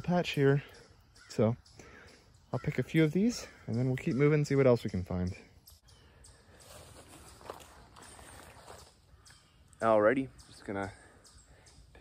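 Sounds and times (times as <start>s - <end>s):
footsteps on forest floor: 6.4s - 9.4s.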